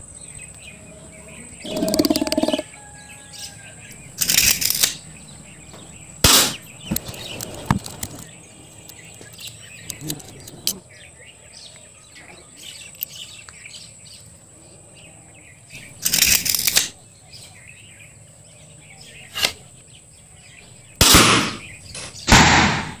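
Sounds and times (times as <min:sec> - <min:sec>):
faint bird chirps: 0:00.0 - 0:07.5.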